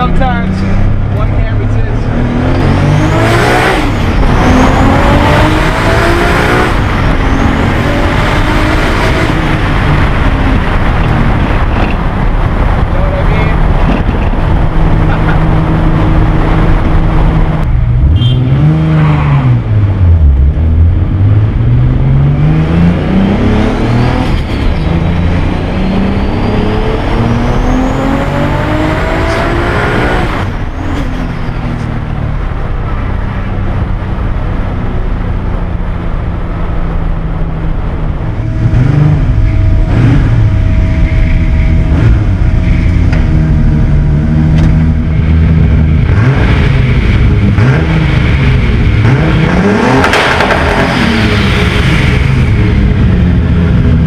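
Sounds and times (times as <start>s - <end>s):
car engine revving with gear changes: 0.0s - 32.1s, 36.8s - 54.0s.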